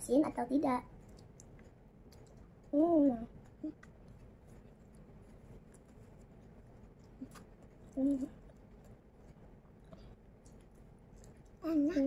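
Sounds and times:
faint chewing: 0.8 - 12.0.

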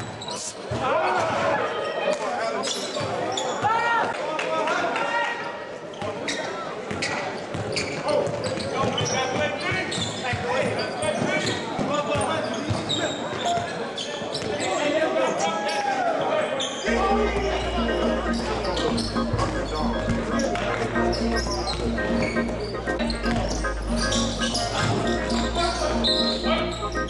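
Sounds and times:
sneakers squeaking on court: 0.0 - 0.8, 5.9 - 14.9, 16.6 - 27.0
players calling out: 15.7 - 27.0.

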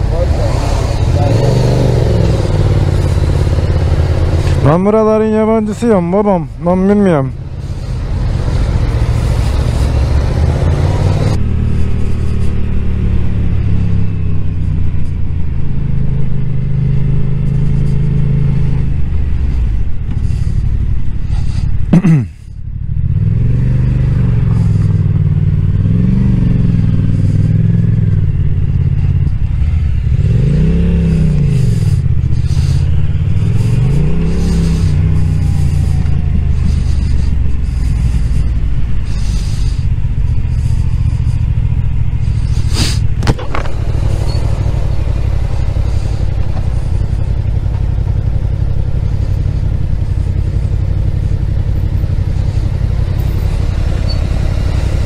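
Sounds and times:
motorcycle engine rumbling: 0.0 - 55.0.

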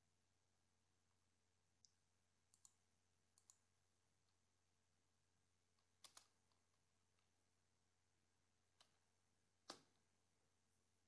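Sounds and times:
faint keyboard keystrokes: 5.8 - 6.6, 9.6 - 10.0.

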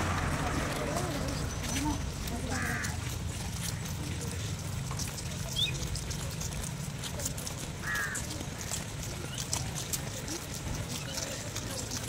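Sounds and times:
group footsteps on brick path: 0.0 - 12.0.

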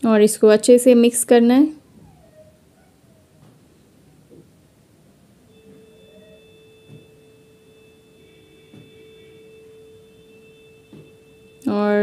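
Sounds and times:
ringing metallic tone: 2.2 - 12.0
faint knocks: 5.6 - 11.7.

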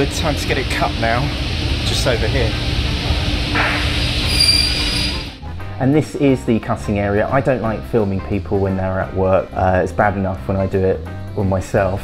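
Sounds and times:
trolley wheels rumbling: 0.0 - 5.4
high-pitched wheel squeal: 3.8 - 5.4.

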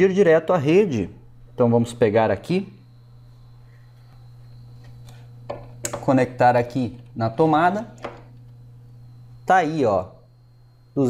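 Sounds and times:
low hum: 0.5 - 11.0.

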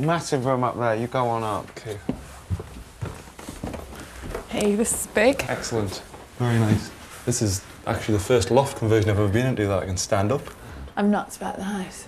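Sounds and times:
footsteps on indoor stairs: 0.0 - 7.2.

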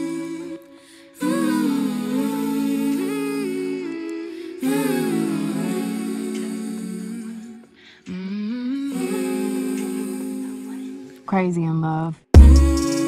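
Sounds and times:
layered humming vocals: 0.0 - 11.2, 12.4 - 13.0.

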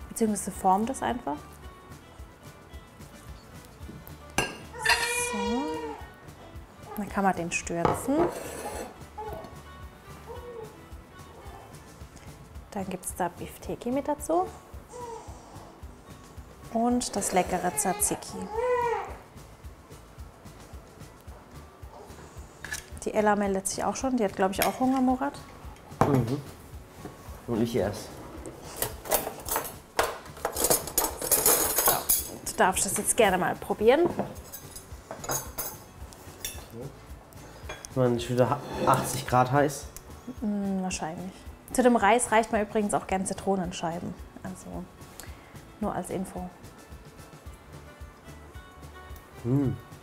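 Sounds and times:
quiet background music: 0.0 - 50.0
ceramic bowl clinking on plate: 4.4 - 5.2
cutlery clinking in a drawer: 28.7 - 33.1, 34.1 - 35.8.

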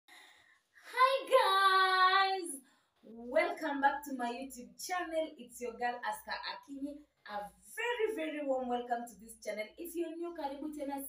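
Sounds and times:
woman speaking: 0.9 - 11.0.

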